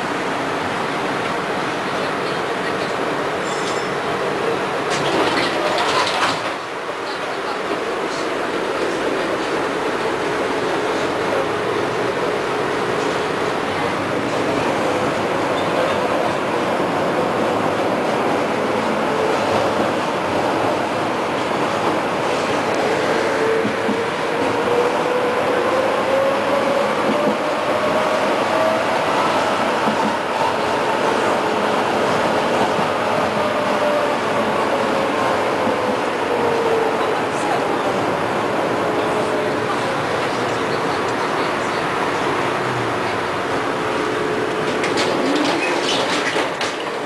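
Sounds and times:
tram wheels rumbling: 0:00.0 - 0:47.0.

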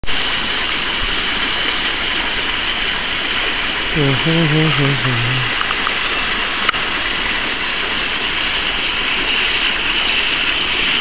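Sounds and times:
water jet pouring into pool: 0:00.1 - 0:11.0.

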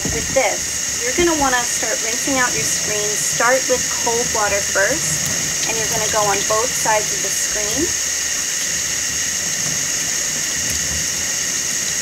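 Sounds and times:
faucet running water: 0:00.0 - 0:12.0.

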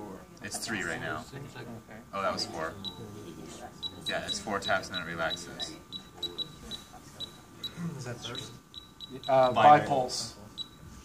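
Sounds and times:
faint voices: 0:00.0 - 0:11.0
short high-pitched electronic beeps: 0:02.4 - 0:03.0, 0:03.8 - 0:10.9.

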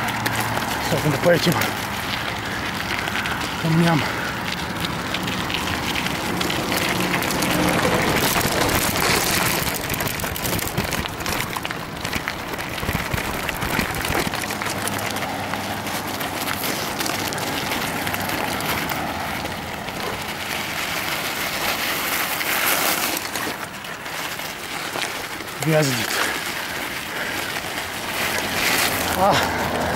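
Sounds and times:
bike tyres crunching over gravel: 0:00.0 - 0:29.9.

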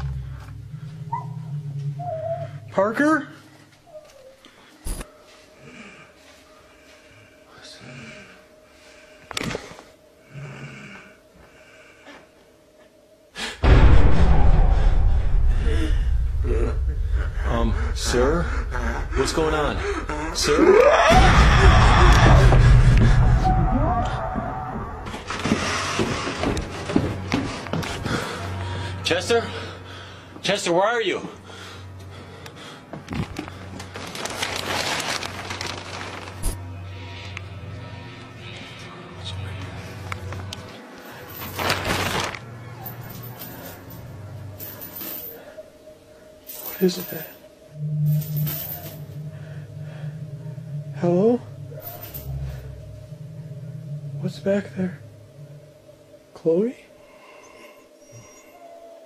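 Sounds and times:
faint steady hum: 0:00.0 - 0:13.6, 0:26.5 - 0:59.0
low droning ambient music: 0:00.0 - 0:59.0
person breathing: 0:04.5 - 0:12.5, 0:15.3 - 0:20.4, 0:27.9 - 0:30.4, 0:31.4 - 0:33.9, 0:48.9 - 0:51.0, 0:56.9 - 0:58.0
low voiced sound: 0:15.5 - 0:24.2, 0:47.7 - 0:56.9.

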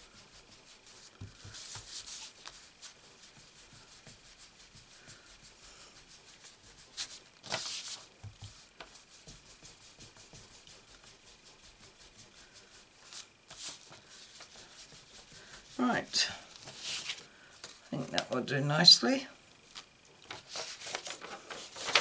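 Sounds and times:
brush scrubbing on cardstock: 0:00.0 - 0:17.8.

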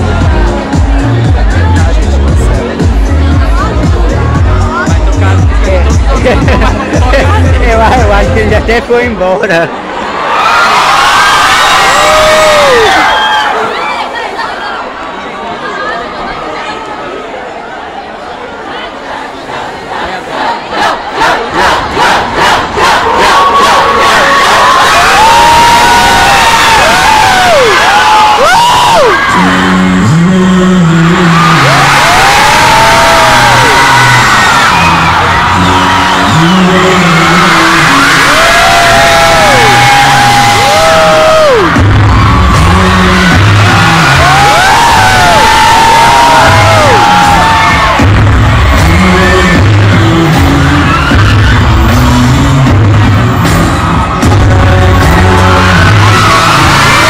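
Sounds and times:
heavy bass beat: 0:00.0 - 0:09.2, 0:29.8 - 0:57.0
stepped bass line: 0:00.0 - 0:09.2, 0:30.0 - 0:57.0
crowd screaming and cheering: 0:00.0 - 0:57.0
crowd chanting: 0:17.4 - 0:25.3.

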